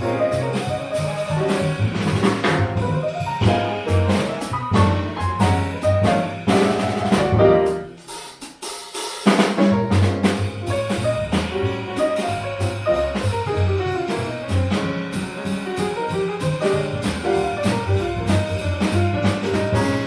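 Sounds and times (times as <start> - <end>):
upright double bass: 0.0 - 8.0, 9.3 - 20.0
grand piano: 0.0 - 8.3, 9.2 - 20.0
drum kit: 0.0 - 20.0.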